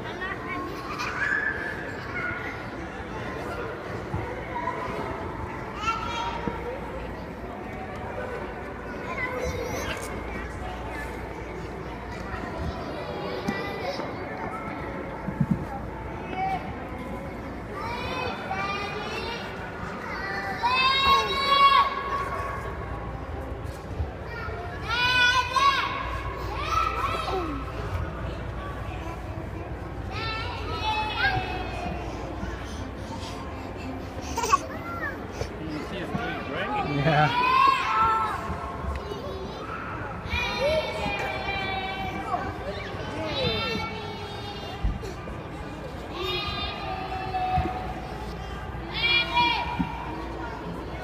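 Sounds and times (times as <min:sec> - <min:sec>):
children playing: 0:00.0 - 0:51.0
crowd chatter: 0:00.0 - 0:51.0.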